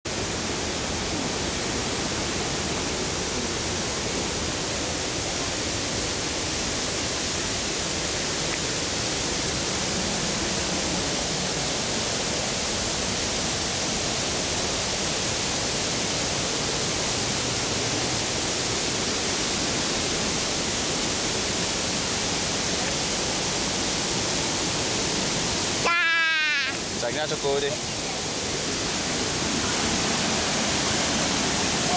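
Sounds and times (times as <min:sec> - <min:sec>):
waterfall rushing: 0:00.1 - 0:31.9.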